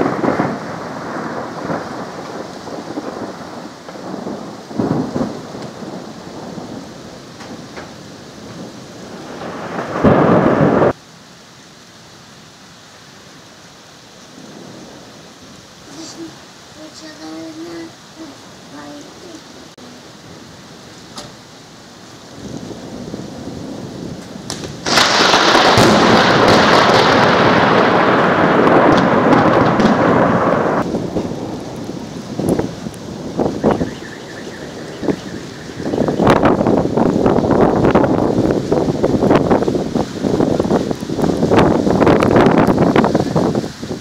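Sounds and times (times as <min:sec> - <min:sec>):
rolling thunder: 0:00.0 - 0:11.0, 0:14.3 - 0:21.6, 0:22.2 - 0:44.0.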